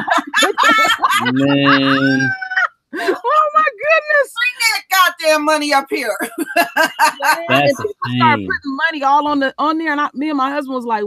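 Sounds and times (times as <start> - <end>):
high squealing laugh: 0.0 - 3.4, 6.2 - 8.6
people laughing: 0.0 - 4.0, 5.9 - 8.7.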